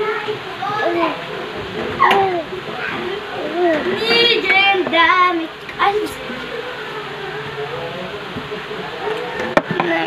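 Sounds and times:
baby vocalizing: 2.0s - 4.5s.

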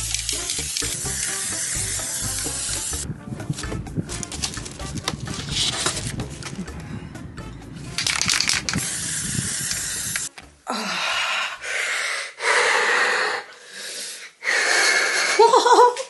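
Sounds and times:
spray-paint can hissing: 0.0s - 3.0s, 8.0s - 10.3s
wind rumble: 3.0s - 10.3s.

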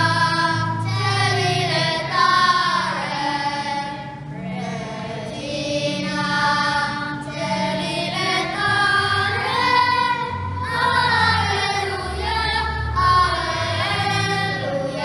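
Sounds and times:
choir singing a hymn: 0.0s - 15.0s
low instrumental accompaniment: 0.0s - 15.0s.

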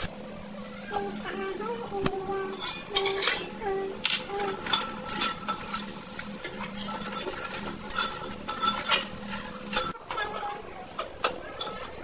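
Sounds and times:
faint sizzle: 0.0s - 12.0s
vegetables frying: 2.1s - 12.0s
metal spatula scraping a metal pan: 2.5s - 3.6s, 4.5s - 10.6s.

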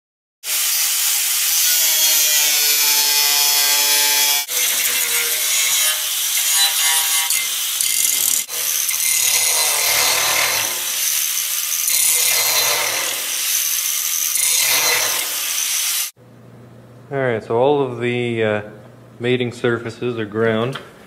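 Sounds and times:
angle grinder grinding steel: 0.5s - 16.2s.

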